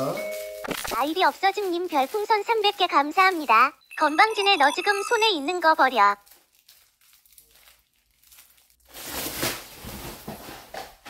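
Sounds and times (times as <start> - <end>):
plastic packaging crinkling: 0.1 - 3.8, 5.2 - 10.6.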